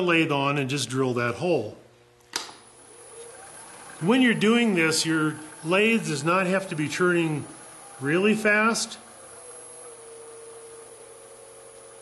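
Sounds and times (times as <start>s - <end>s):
lathe switch click: 2.3s - 2.7s
lathe motor whining: 2.4s - 12.0s.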